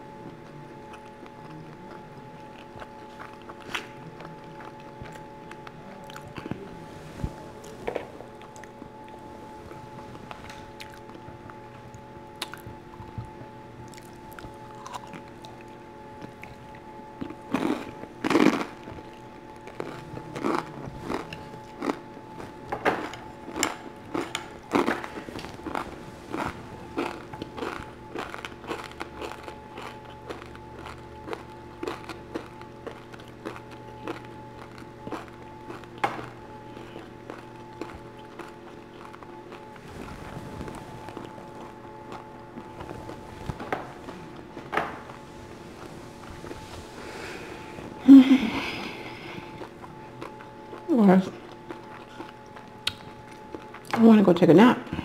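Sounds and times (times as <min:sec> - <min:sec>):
crunchy chewing and biting: 0:00.0 - 0:48.0, 0:48.7 - 0:54.0.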